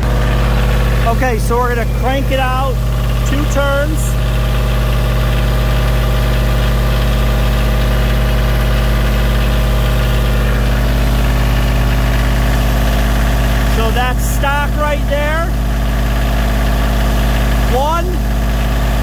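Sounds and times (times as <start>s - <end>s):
diesel tractor engine running: 0.0s - 19.0s.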